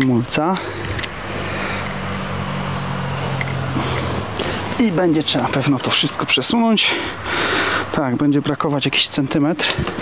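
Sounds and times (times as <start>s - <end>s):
low engine hum: 0.0s - 8.7s.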